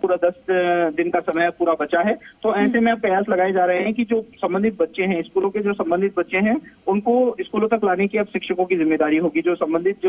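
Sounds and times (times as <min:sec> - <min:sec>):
man talking over phone line: 0:02.3 - 0:03.2.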